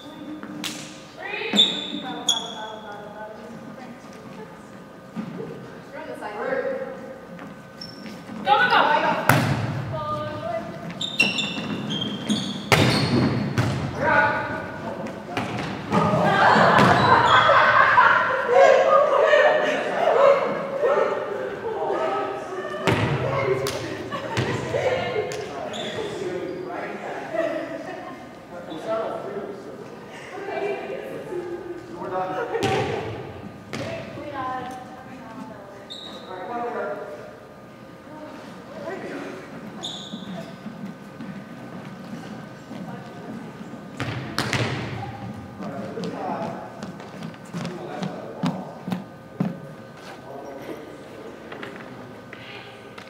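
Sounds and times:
players' voices: 0:08.3 - 0:53.0
volleyballs thudding on gym floor: 0:09.2 - 0:10.0, 0:12.7 - 0:14.0, 0:15.3 - 0:17.0, 0:32.6 - 0:34.2, 0:44.0 - 0:46.2
volleyball being struck: 0:12.7 - 0:13.9.

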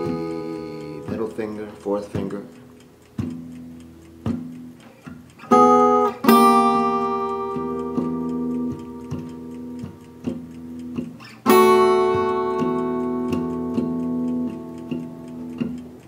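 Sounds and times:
blues guitar strumming: 0:00.0 - 0:16.0.

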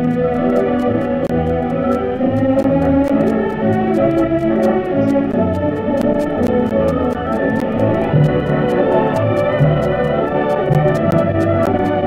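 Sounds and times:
crackle of clicks: 0:00.0 - 0:12.0.

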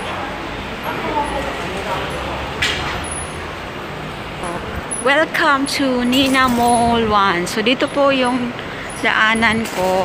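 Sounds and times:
road traffic rumble and hiss: 0:00.0 - 0:10.0.

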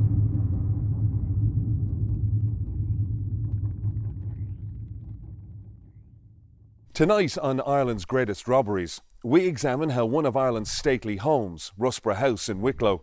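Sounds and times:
low rumbling drone: 0:00.0 - 0:06.9.

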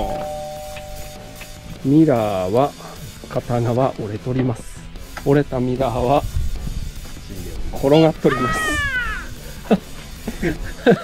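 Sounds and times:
background music: 0:00.0 - 0:11.0
person laughing: 0:08.3 - 0:11.0.

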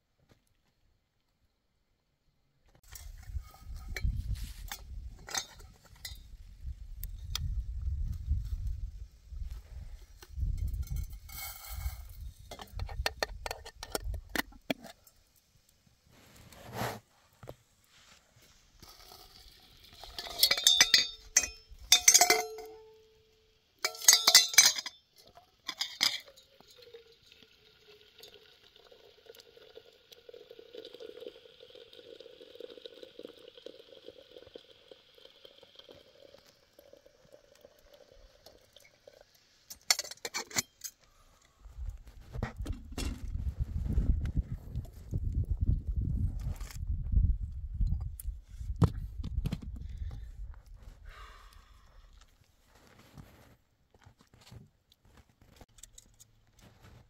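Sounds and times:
metal kettle and teapot clinking: 0:02.9 - 0:06.3, 0:10.4 - 0:15.1, 0:18.8 - 0:23.1, 0:23.8 - 0:32.2, 0:35.5 - 0:41.1
water pouring into metal teapot: 0:23.8 - 0:40.6.

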